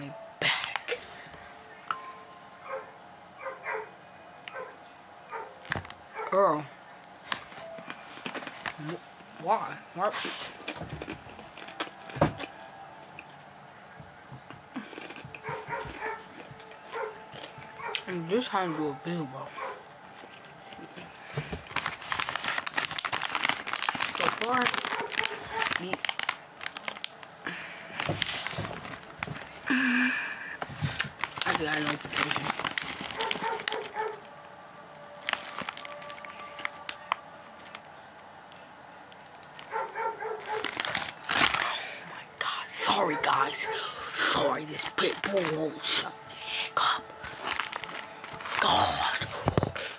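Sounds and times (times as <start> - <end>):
dog barking: 2.6 - 3.9, 4.5 - 5.6, 15.4 - 16.3, 16.9 - 17.2, 19.6 - 19.8, 24.9 - 25.7, 33.2 - 34.2, 39.7 - 40.7, 43.0 - 44.0.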